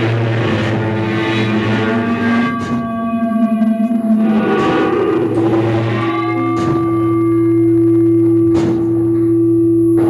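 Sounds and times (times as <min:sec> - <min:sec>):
loud steady drone tone: 0:00.0 - 0:10.0
low hum: 0:00.0 - 0:10.0.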